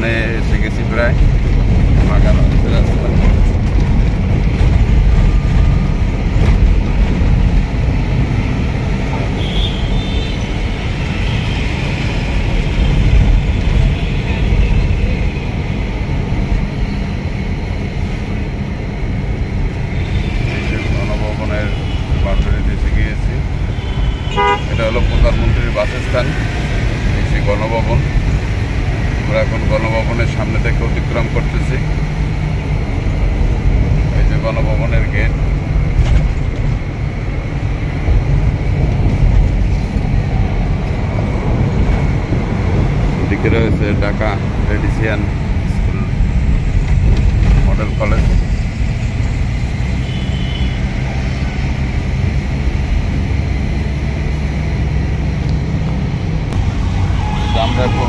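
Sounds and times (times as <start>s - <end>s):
vehicle engine and road rumble: 0.0s - 58.0s
vehicle horn toots: 9.3s - 10.6s, 23.7s - 25.4s, 50.0s - 50.8s, 57.0s - 58.0s.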